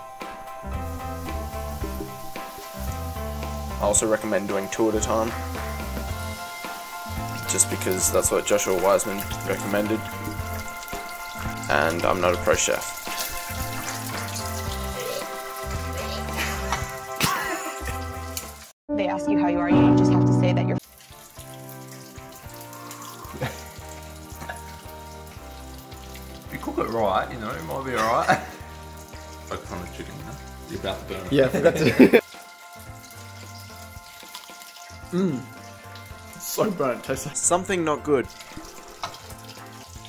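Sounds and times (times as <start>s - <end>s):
chicken frying in hot oil: 0.0s - 18.7s, 20.8s - 40.0s
background music with bass line: 0.0s - 20.8s, 22.3s - 34.2s, 35.0s - 40.0s.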